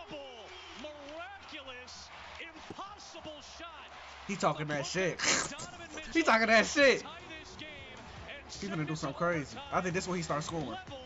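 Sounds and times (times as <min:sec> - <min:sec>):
broadcast speech: 0:00.0 - 0:11.0
crowd noise: 0:00.0 - 0:11.0.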